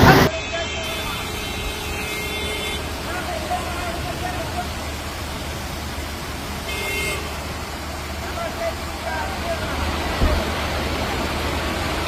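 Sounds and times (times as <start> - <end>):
car horn toot: 0.0 - 2.9, 6.6 - 7.4
rain and floodwater rushing: 0.0 - 12.0.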